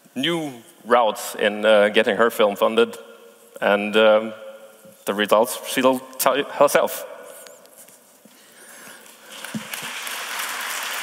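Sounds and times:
audience applause: 0:09.3 - 0:11.0.

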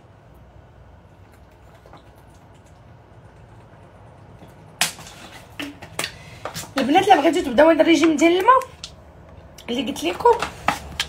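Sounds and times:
woman speaking: 0:06.7 - 0:08.8, 0:09.6 - 0:10.6.

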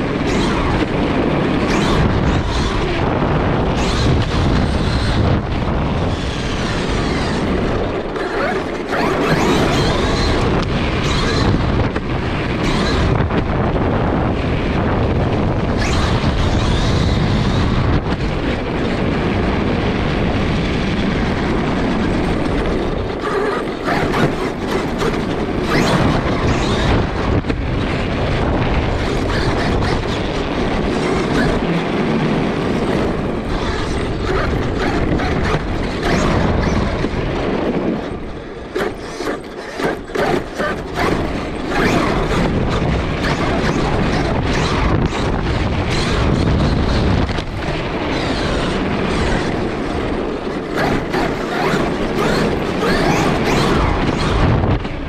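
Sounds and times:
toy truck driving over pavement: 0:00.0 - 0:20.5, 0:21.2 - 0:55.0.

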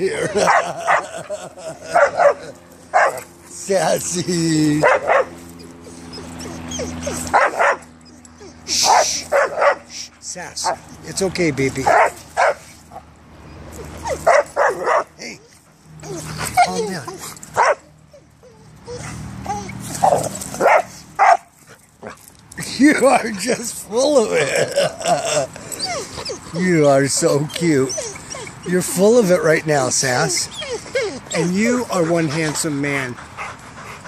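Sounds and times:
dog barking: 0:00.4 - 0:01.1, 0:02.0 - 0:03.3, 0:04.8 - 0:05.4, 0:07.3 - 0:07.9, 0:08.8 - 0:09.9, 0:11.8 - 0:12.7, 0:14.2 - 0:15.1, 0:17.6 - 0:17.8, 0:20.0 - 0:21.5
dog whining and yipping: 0:04.8 - 0:09.8, 0:13.4 - 0:21.4, 0:25.6 - 0:32.2.

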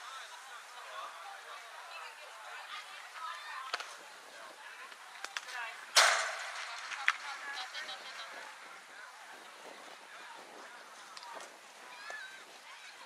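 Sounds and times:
chatter of people: 0:00.0 - 0:13.0.

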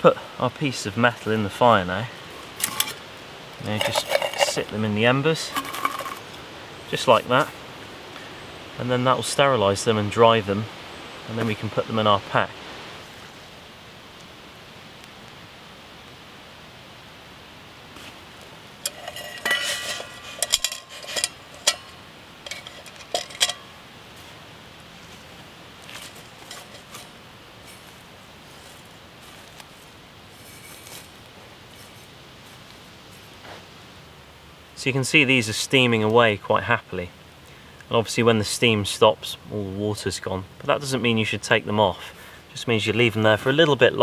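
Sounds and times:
steel mug and bottle clinking: 0:03.6 - 0:04.7, 0:05.5 - 0:06.4, 0:18.8 - 0:23.8, 0:26.0 - 0:27.8.

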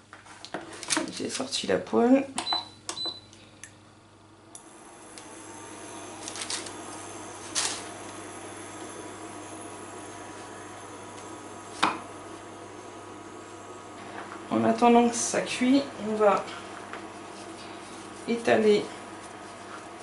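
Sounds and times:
induction hob fan and whine: 0:00.0 - 0:20.0.

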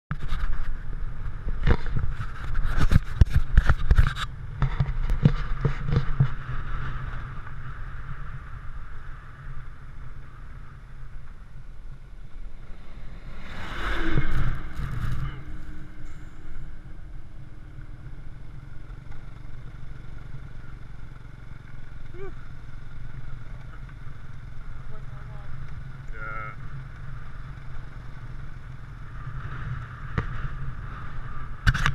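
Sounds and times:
motorbike engine and wind rumble: 0:00.1 - 0:31.9
knocks and bumps on microphone: 0:01.4 - 0:06.4
vehicle passing: 0:05.5 - 0:31.7.

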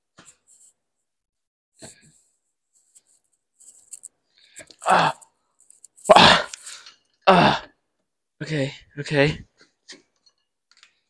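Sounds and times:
man grunting with effort: 0:04.8 - 0:05.2, 0:06.1 - 0:06.6, 0:07.3 - 0:07.7.

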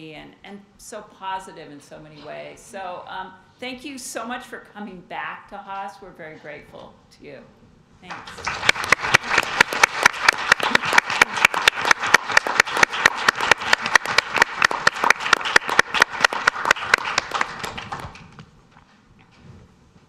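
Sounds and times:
audience applause: 0:08.1 - 0:18.4
close sharp hand claps: 0:08.1 - 0:18.4.

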